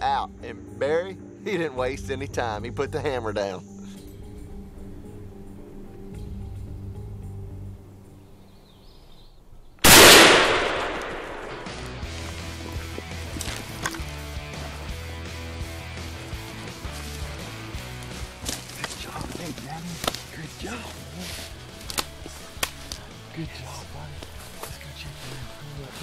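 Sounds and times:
shotgun shot: 9.8s - 12.1s.

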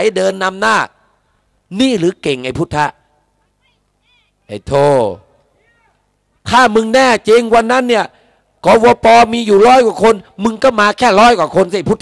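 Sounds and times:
man shouting into a microphone: 4.0s - 12.0s.

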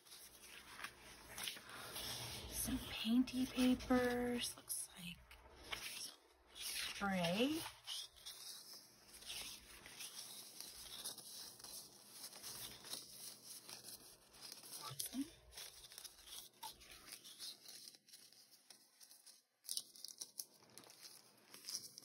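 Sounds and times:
paper rustling: 0.0s - 22.0s.

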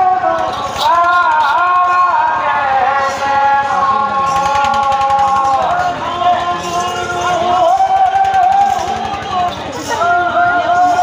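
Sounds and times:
voices singing a wavering melody: 0.0s - 11.0s
fast drum beat: 4.2s - 6.6s.

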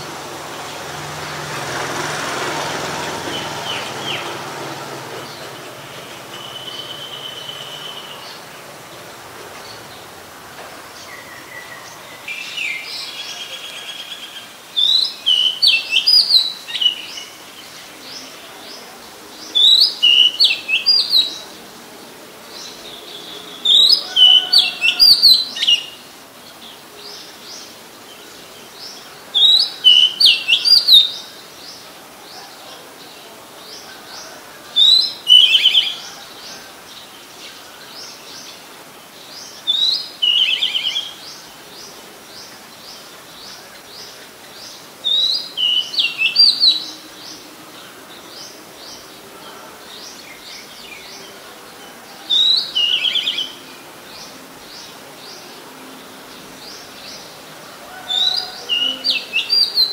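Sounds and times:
faint bird chirping: 3.0s - 10.3s.

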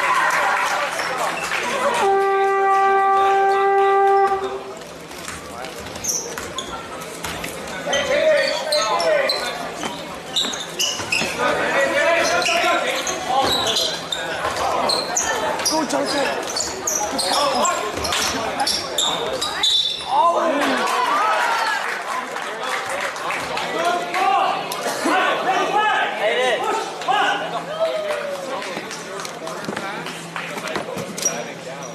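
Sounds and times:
sneaker squeaks: 5.2s - 20.2s, 30.7s - 31.9s.

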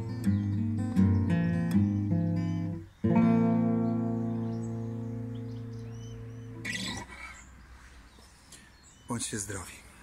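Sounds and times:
acoustic guitar chord ringing: 0.0s - 7.0s
faint bird chirps: 0.0s - 10.0s.

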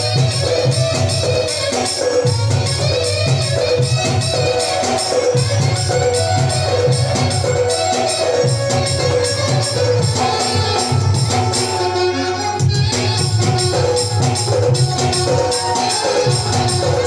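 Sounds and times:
festive band music: 0.0s - 17.0s
steady drum beat: 0.0s - 17.0s.

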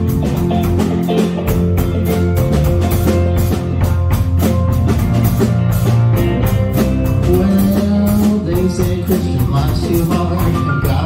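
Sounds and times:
bass guitar: 0.0s - 11.0s
drum kit beat: 0.0s - 11.0s
electric guitar: 0.0s - 11.0s.

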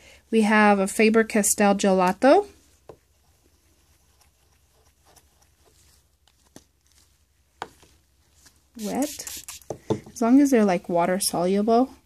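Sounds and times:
gloved hands rustling: 2.2s - 10.3s.

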